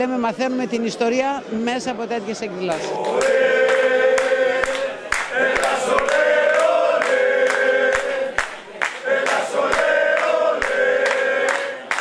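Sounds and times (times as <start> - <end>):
rhythmic hand-clapping: 2.7 - 12.0
group chant-like singing: 2.8 - 12.0.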